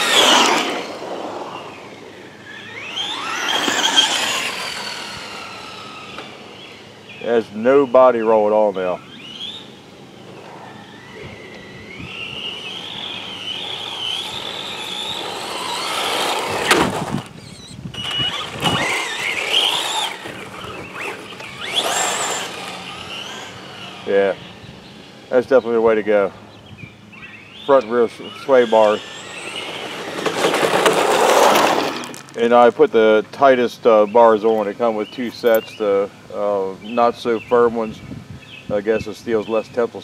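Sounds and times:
tyres rolling over gritty asphalt: 0.0s - 7.4s, 10.2s - 26.2s, 28.0s - 33.3s
rc car electric motor whine: 0.0s - 32.5s.

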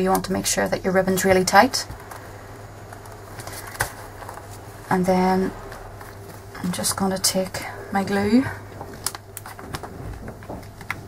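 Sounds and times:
paper rustling: 2.9s - 4.8s, 8.8s - 11.0s.

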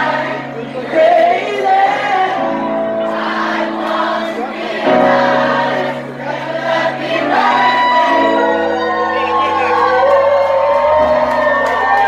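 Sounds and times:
people singing: 0.0s - 10.0s
bass: 7.9s - 12.0s.

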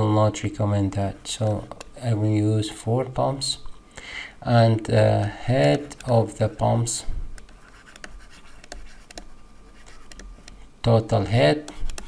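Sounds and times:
stylus tapping: 1.4s - 2.0s, 7.3s - 10.7s, 11.6s - 12.0s
stylus scratching on tablet: 5.6s - 6.8s, 7.4s - 12.0s.

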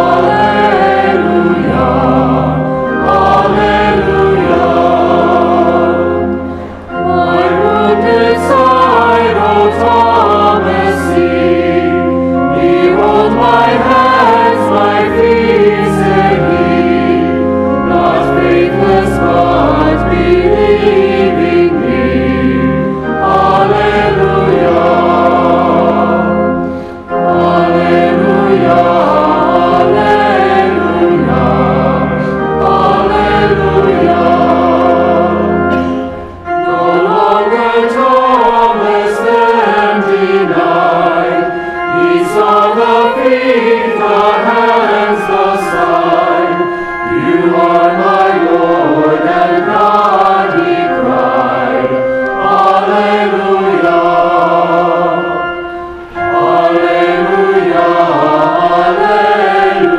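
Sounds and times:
choir singing a hymn: 0.0s - 59.9s
sustained low accompaniment: 0.0s - 59.9s.

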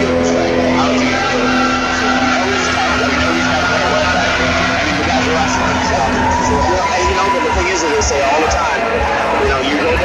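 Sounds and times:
crowd noise: 0.0s - 10.0s
music over loudspeakers: 0.0s - 10.0s.

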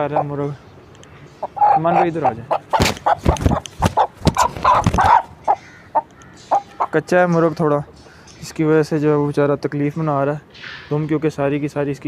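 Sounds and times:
rooster squawking and clucking: 1.4s - 7.1s.

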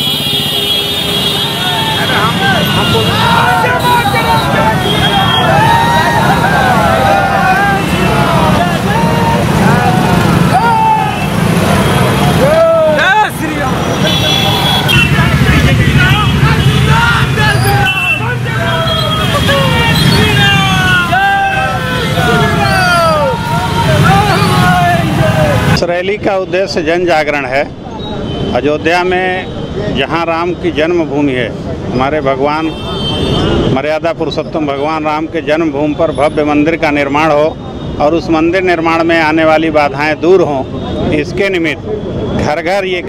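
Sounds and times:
crowd shouting: 1.4s - 25.8s
motorcycle engines running: 4.3s - 12.6s, 13.5s - 25.7s.

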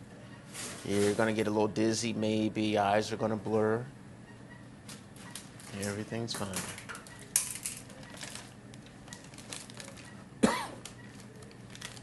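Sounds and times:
plastic rustling: 5.3s - 12.0s
sharp cough: 10.4s - 10.8s.

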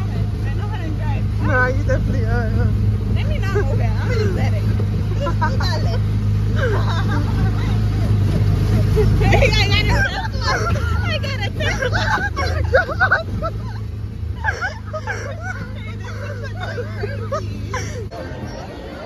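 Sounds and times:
small gasoline engine droning: 0.0s - 19.0s
unclear voices and chatter: 0.0s - 19.0s.

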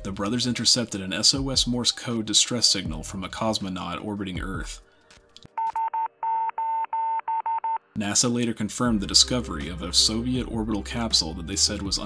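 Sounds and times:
morse code beeping: 5.6s - 7.9s.

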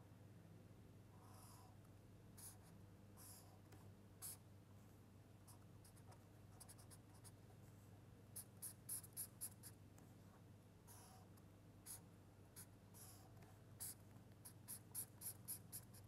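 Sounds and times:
low steady hum: 0.0s - 16.0s
marker pen strokes on paper: 12.6s - 16.0s.

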